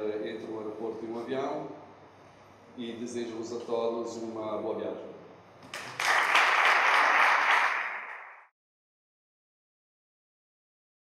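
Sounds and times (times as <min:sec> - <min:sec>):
audience applauding: 0:05.6 - 0:08.5.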